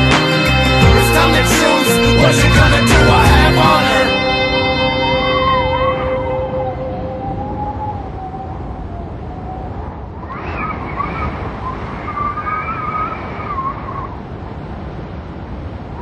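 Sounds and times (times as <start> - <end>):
steady rushing noise: 0.0 - 16.0
wavering gliding tone: 3.4 - 14.2.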